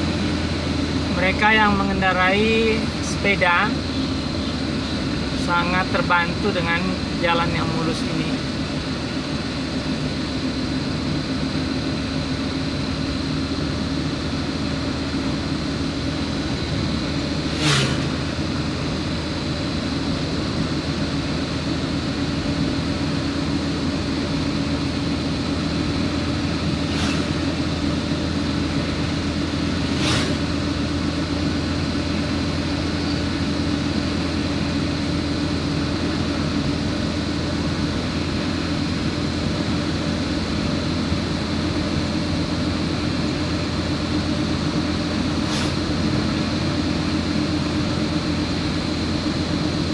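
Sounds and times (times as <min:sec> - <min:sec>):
vehicle engine hum: 0:00.0 - 0:49.9
tyre noise on road: 0:08.2 - 0:49.9.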